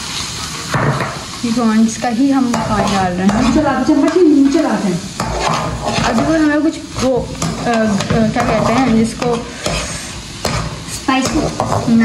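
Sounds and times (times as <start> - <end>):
food sizzling in butter: 0.0 - 12.0.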